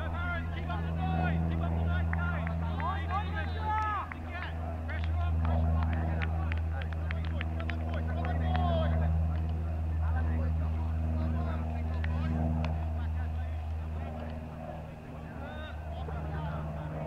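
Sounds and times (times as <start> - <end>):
faint distant voices: 0.0 - 17.0
low engine hum: 0.0 - 17.0.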